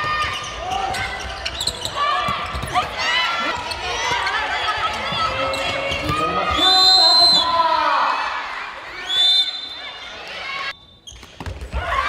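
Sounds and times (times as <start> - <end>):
crowd voices: 0.0 - 10.8
ball bouncing on court floor: 11.1 - 11.9.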